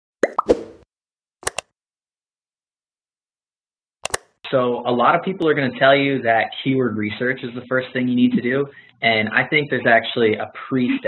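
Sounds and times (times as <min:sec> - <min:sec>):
sharp clicks: 0:01.4 - 0:01.7, 0:04.0 - 0:04.3.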